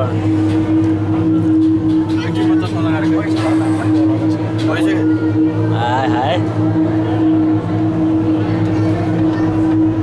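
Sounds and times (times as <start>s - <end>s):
cable car machinery hum: 0.0s - 10.0s
faint voices: 0.0s - 10.0s.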